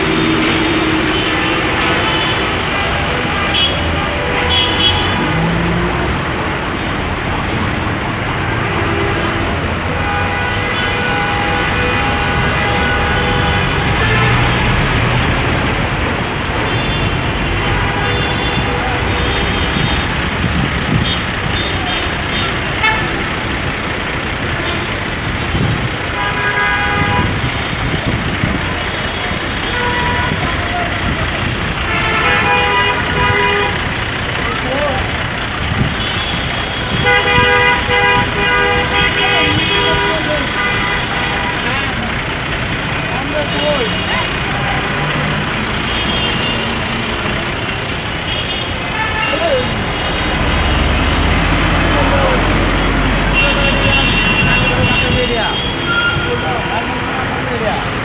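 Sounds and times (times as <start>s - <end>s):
vehicle horns honking: 0.0s - 5.6s, 8.4s - 23.4s, 24.5s - 33.9s, 35.8s - 42.2s, 42.8s - 57.7s
road traffic: 0.0s - 58.0s.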